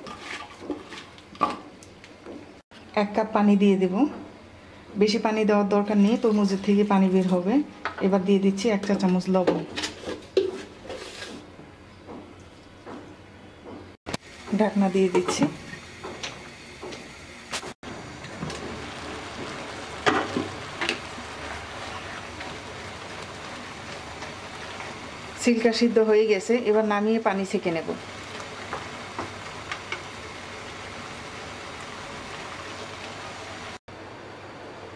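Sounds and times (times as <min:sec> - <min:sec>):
woman speaking: 0:03.0 - 0:04.2, 0:05.0 - 0:09.6, 0:14.5 - 0:15.6, 0:25.4 - 0:28.0
watermelon rind sizzling in pan: 0:14.2 - 0:33.8.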